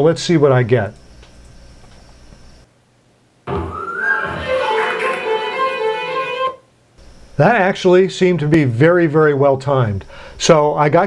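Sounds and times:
string ensemble playing: 0:03.5 - 0:06.6.

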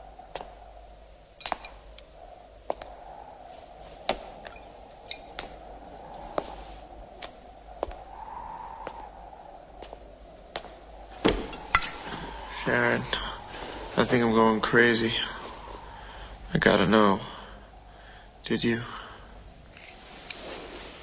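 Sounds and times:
film soundtrack ambience: 0:00.0 - 0:21.0
person speaking: 0:11.8 - 0:17.6.

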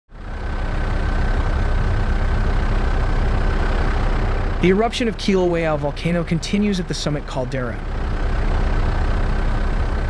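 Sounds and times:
helicopter engine and rotor noise: 0:00.1 - 0:10.0.

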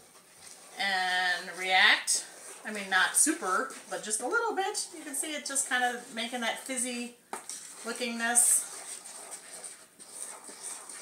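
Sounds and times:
spoon scraping metal bowl: 0:00.0 - 0:11.0.

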